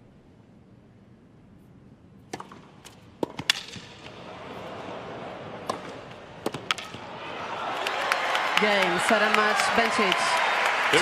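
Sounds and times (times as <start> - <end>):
tennis racket strikes: 2.3 - 4.1, 5.6 - 7.0
tennis ball bounces: 2.3 - 4.2, 5.5 - 7.1.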